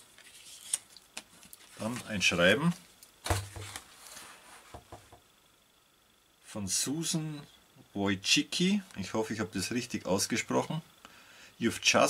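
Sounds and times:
paper rustling: 0.0 - 4.6.

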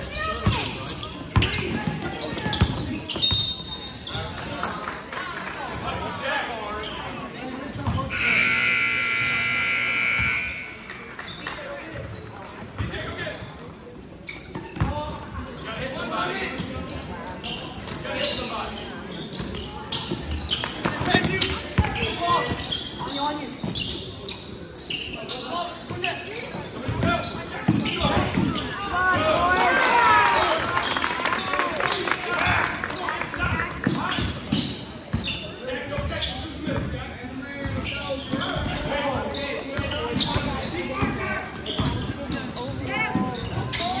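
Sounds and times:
sneakers squeaking: 0.0 - 5.0, 5.7 - 15.9, 16.5 - 29.2, 30.4 - 44.0
voices echoing in gym: 0.0 - 44.0
scoreboard buzzer: 8.1 - 10.9.

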